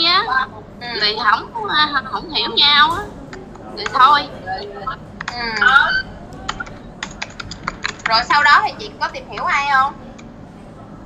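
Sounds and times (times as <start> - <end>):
keyboard key clicks: 6.4 - 8.2.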